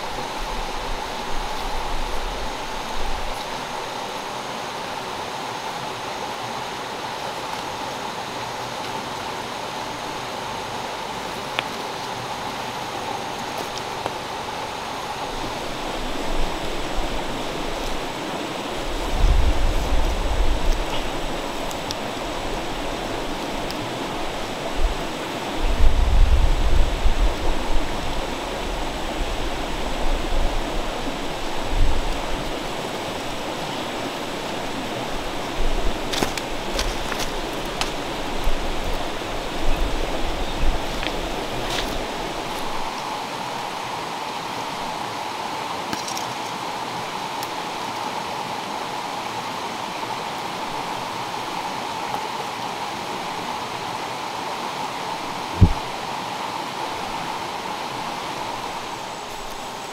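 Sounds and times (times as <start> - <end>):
stream flowing over stones: 0.0 - 59.9.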